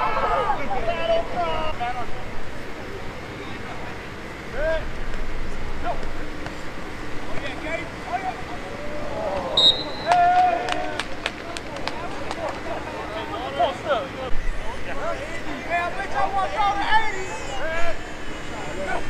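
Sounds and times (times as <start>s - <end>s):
players and spectators shouting: 0.0s - 3.2s, 5.7s - 19.0s
referee's whistle blast: 9.6s - 10.2s.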